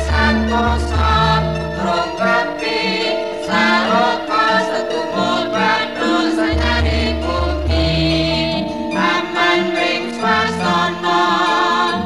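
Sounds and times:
instrumental accompaniment: 0:00.0 - 0:12.0
voices singing: 0:00.0 - 0:12.0
deep bass note: 0:06.6 - 0:08.8.

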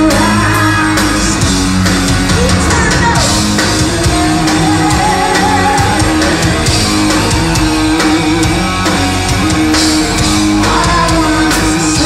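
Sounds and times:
bass: 0:00.0 - 0:12.0
drums: 0:00.0 - 0:12.0
electric guitar chords: 0:00.0 - 0:12.0.

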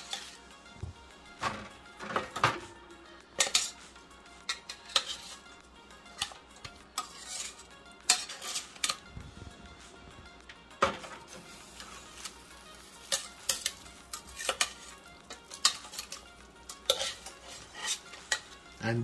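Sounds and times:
metal tongs clinking on pot: 0:03.4 - 0:03.8, 0:04.4 - 0:05.4, 0:06.1 - 0:09.0, 0:11.8 - 0:18.6.

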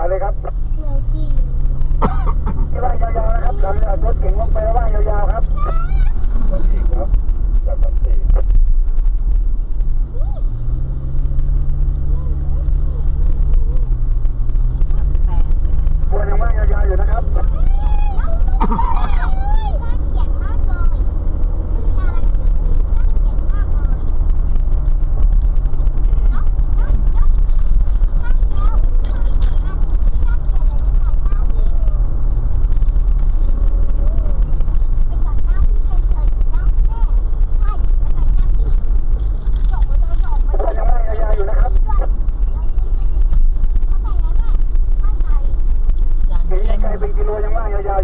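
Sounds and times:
engine and road noise in cab: 0:00.0 - 0:48.0.

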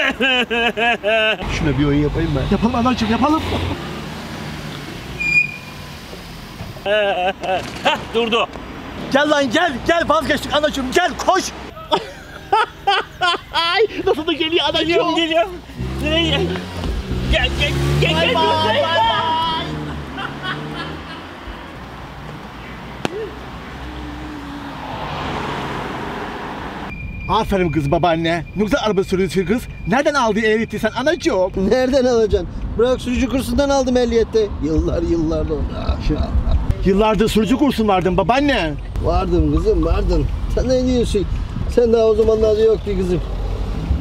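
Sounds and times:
people laughing: 0:00.0 - 0:01.5, 0:06.8 - 0:08.3, 0:11.7 - 0:15.6, 0:17.5 - 0:21.7
car engine and road rumble: 0:00.0 - 0:44.0
high-pitched squeal: 0:05.1 - 0:06.5
car driving past: 0:15.6 - 0:26.9.

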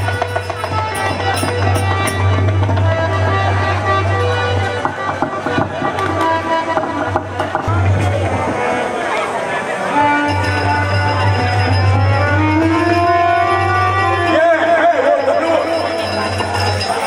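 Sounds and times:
drum strokes: 0:00.0 - 0:03.4, 0:04.2 - 0:09.1
held melodic notes: 0:00.0 - 0:17.0.

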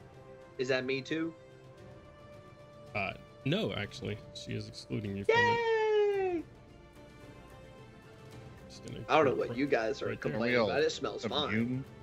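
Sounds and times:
faint background music: 0:00.0 - 0:12.0
man's high-pitched cry: 0:05.3 - 0:06.5.

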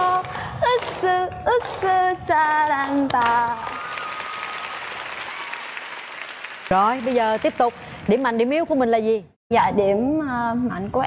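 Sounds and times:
studio audience applauding: 0:03.3 - 0:08.7.

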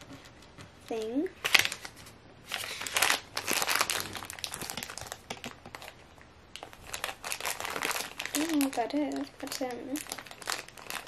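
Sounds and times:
plastic wrapper crinkling: 0:01.0 - 0:11.0.

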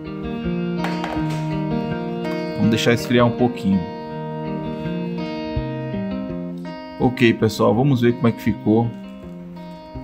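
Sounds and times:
plucked guitar over held tones: 0:00.0 - 0:10.0.

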